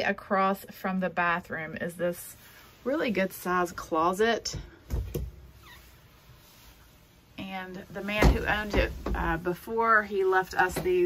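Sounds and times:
door squeak: 0:05.6 - 0:05.9.

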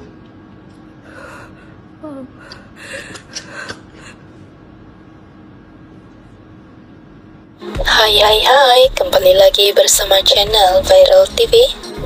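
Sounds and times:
woman whimpering: 0:02.0 - 0:03.0.

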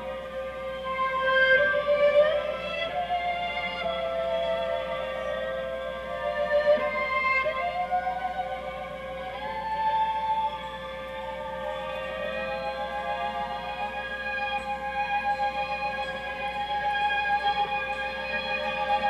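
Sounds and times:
held drone note: 0:00.0 - 0:19.0.

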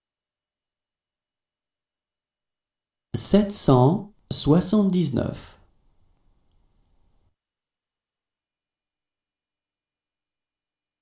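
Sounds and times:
person reading a number aloud: 0:03.2 - 0:05.6.

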